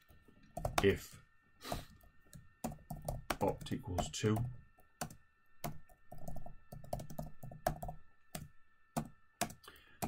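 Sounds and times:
typing on computer keyboard: 0:00.6 - 0:00.9, 0:02.6 - 0:09.6.

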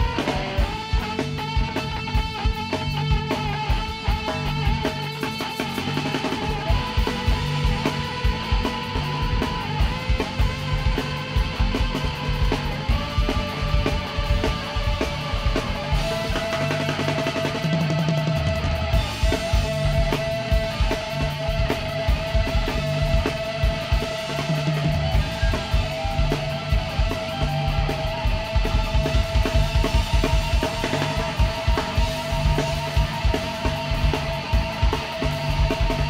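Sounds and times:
drum kit beat: 0:00.0 - 0:36.0
electric guitar holding long notes: 0:00.0 - 0:36.0.

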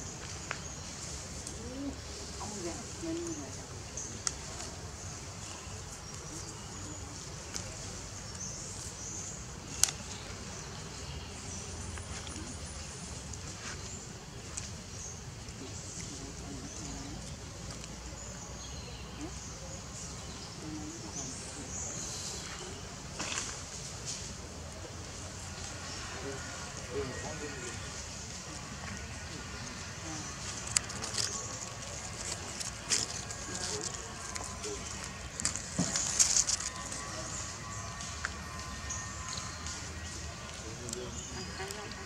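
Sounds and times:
low outdoor background noise: 0:00.0 - 0:42.0.

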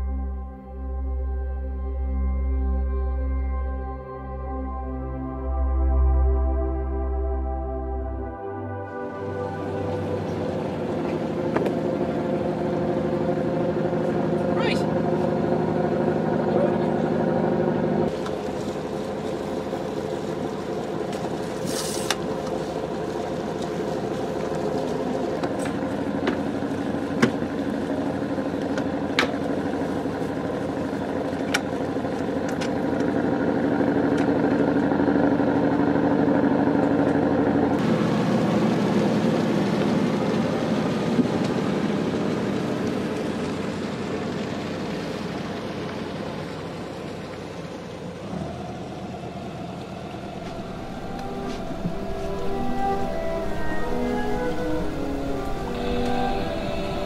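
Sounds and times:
boat engine running: 0:00.0 - 0:57.0.

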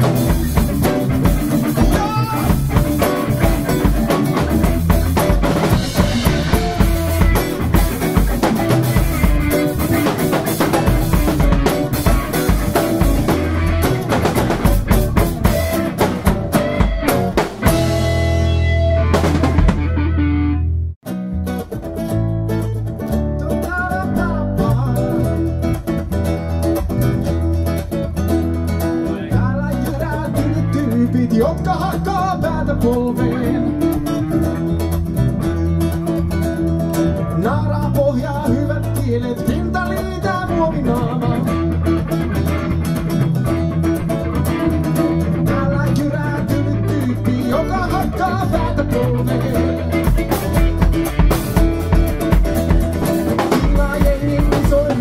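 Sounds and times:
folk-rock band music: 0:00.0 - 0:55.0.

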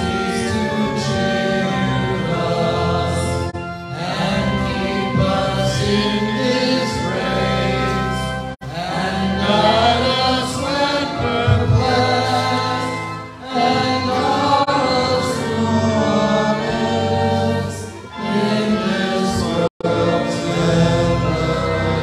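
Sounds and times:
congregation singing a hymn: 0:00.0 - 0:22.0
sustained low accompaniment: 0:00.0 - 0:22.0.

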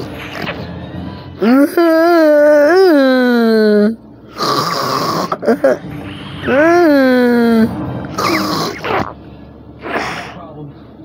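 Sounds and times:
person holding vocal tones: 0:06.4 - 0:09.1.

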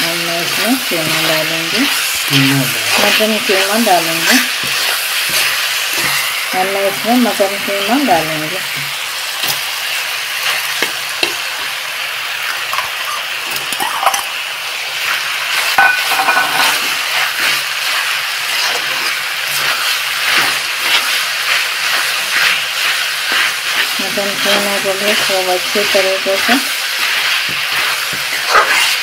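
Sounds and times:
food sizzling in hot oil: 0:00.0 - 0:29.0
spatula scraping a pan: 0:00.4 - 0:09.6, 0:15.6 - 0:29.0.

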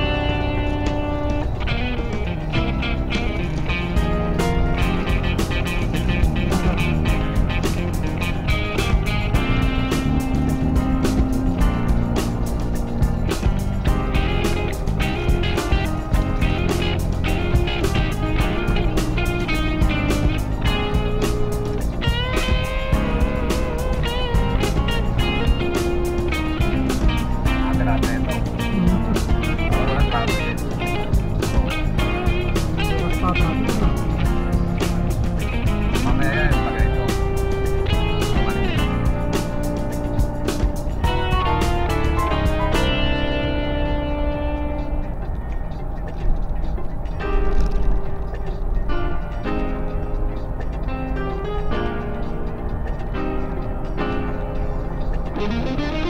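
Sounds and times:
background music with steady beat: 0:00.0 - 0:56.0.

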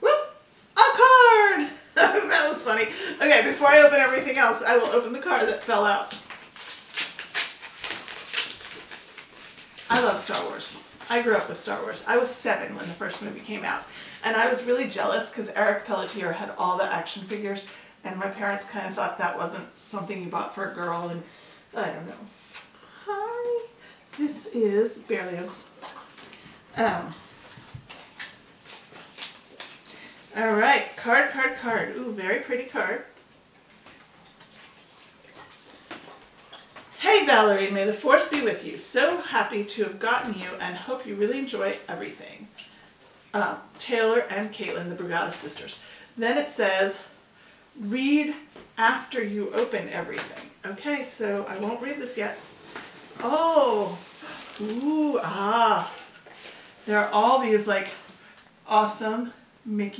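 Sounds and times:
paper envelope tearing: 0:06.2 - 0:10.6.

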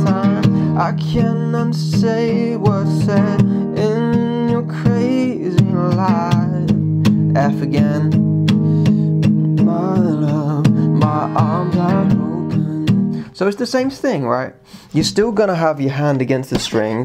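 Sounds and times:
person singing: 0:00.0 - 0:13.3
acoustic guitar strumming: 0:00.0 - 0:13.9.

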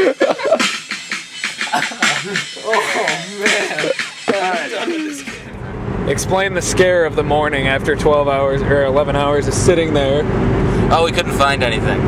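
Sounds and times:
person calling out: 0:01.8 - 0:05.4.

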